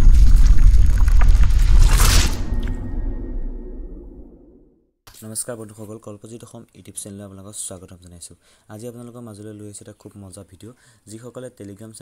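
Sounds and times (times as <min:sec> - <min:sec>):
crackles: 0:00.0 - 0:04.0
deep rumble: 0:00.0 - 0:04.7
whoosh: 0:00.0 - 0:04.7.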